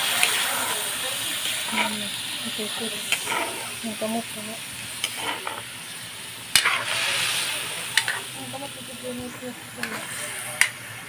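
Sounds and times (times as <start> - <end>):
frying sizzle: 0.0 - 11.0
metal spatula scraping a wok: 1.5 - 3.9, 5.0 - 5.7, 6.5 - 8.4, 9.8 - 10.7.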